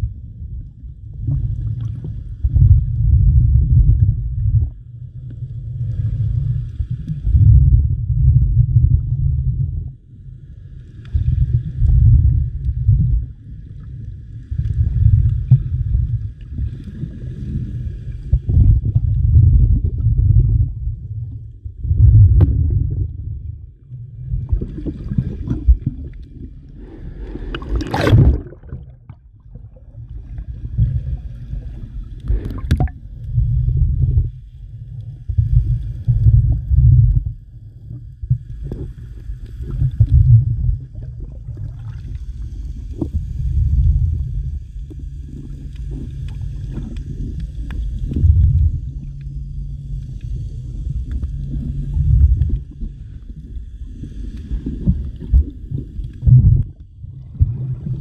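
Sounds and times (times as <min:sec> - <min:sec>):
faint hum: 0:00.0 - 0:58.0
underwater water rumble: 0:00.0 - 0:58.0
water swishes: 0:00.0 - 0:58.0.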